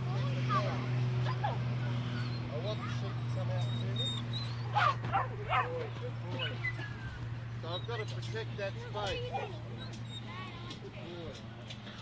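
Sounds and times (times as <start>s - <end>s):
puppies yipping and barking: 1.2s - 10.8s.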